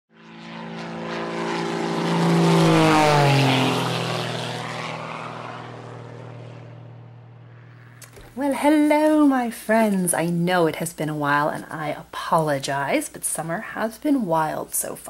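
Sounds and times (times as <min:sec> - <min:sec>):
propeller airplane flying past: 0:00.1 - 0:12.0.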